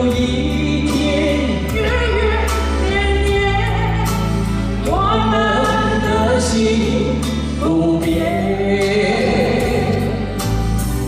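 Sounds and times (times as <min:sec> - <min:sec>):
woman singing: 0:00.0 - 0:10.4
man singing: 0:00.0 - 0:10.8
amplified backing music: 0:00.0 - 0:11.0.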